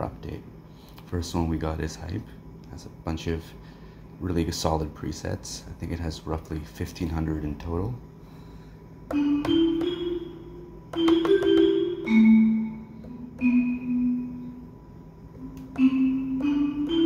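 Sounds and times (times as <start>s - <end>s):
marimba melody: 9.1s - 14.6s, 15.7s - 17.0s.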